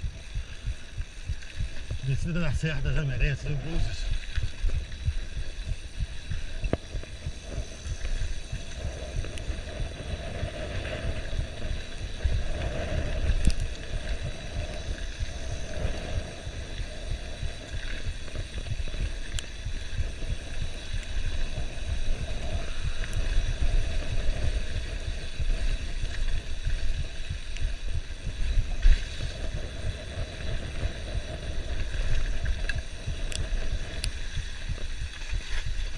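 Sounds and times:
mountain bike rumble and rattle: 0:00.0 - 0:35.9
wind buffeting microphone: 0:00.0 - 0:35.9.

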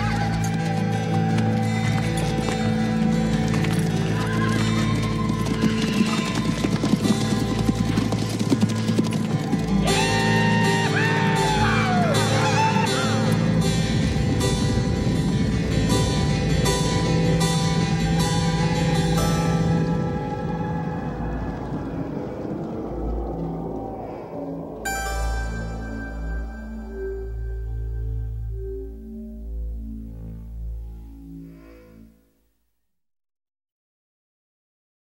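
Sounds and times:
hooves clip-clopping: 0:00.0 - 0:11.1
background music: 0:00.0 - 0:32.6
horses whinnying: 0:03.9 - 0:13.2.

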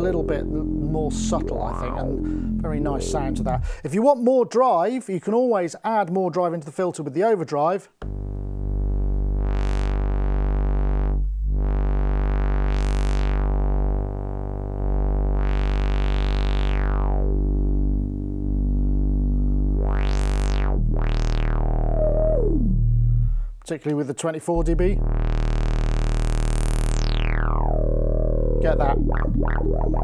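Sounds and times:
synth bass note with filter sweeps: 0:00.0 - 0:03.8, 0:08.0 - 0:23.5, 0:24.6 - 0:30.0.

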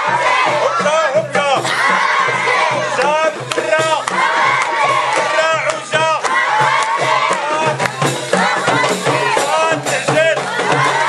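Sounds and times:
children chanting and shouting: 0:00.0 - 0:11.0
rhythmic hand clapping: 0:00.0 - 0:11.0.

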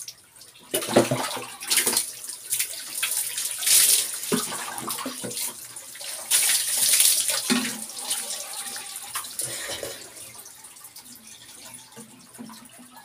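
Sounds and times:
water pouring and splashing: 0:00.0 - 0:13.0.

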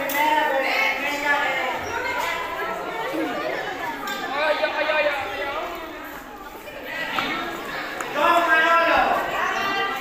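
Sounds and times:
crowd chatter in large hall: 0:00.0 - 0:10.0.

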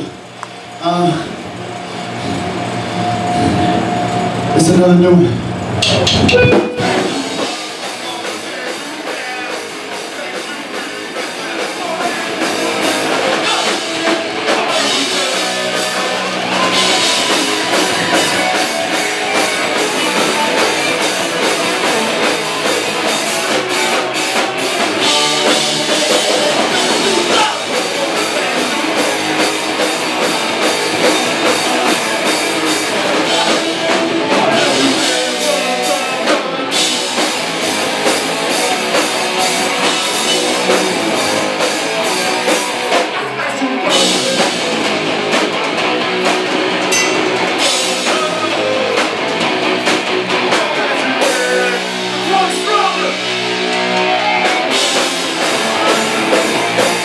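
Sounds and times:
electric guitars: 0:00.0 - 0:57.0
drum kit fast beat: 0:05.8 - 0:43.2, 0:43.9 - 0:57.0.

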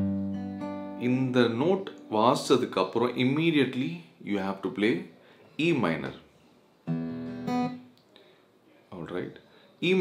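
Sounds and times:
acoustic guitar strumming: 0:00.0 - 0:02.5, 0:06.8 - 0:07.9.

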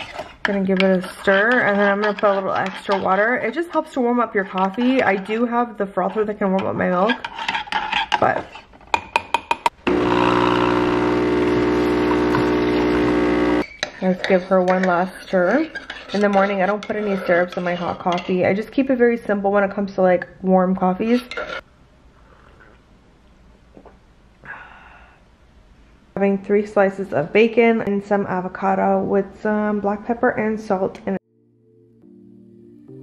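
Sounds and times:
espresso machine pump humming: 0:09.9 - 0:13.6
sipping coffee: 0:09.9 - 0:13.9
breathy exhale: 0:24.4 - 0:25.2.

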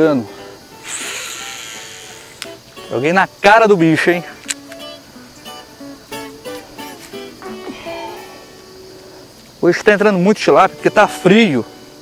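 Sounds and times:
guitar background music: 0:00.0 - 0:12.0
fishing line hissing off reel: 0:00.7 - 0:02.8.

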